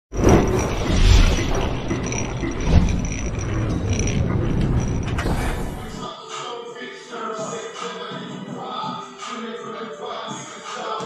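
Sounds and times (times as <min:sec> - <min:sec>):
low rumble: 0:00.2 - 0:06.0.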